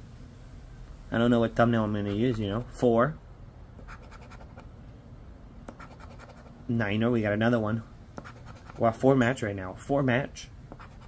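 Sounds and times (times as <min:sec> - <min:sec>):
lottery ticket being scratched: 0:01.9 - 0:02.8, 0:03.8 - 0:04.7, 0:05.7 - 0:06.6, 0:08.2 - 0:09.0, 0:10.7 - 0:11.0.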